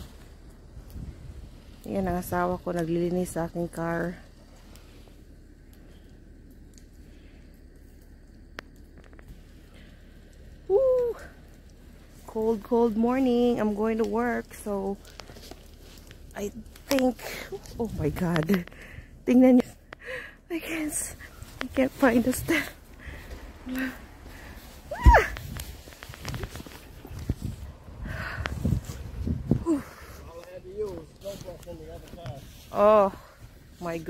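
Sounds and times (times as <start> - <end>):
high-pitched voice exclaiming ooh: 24.9 - 25.4.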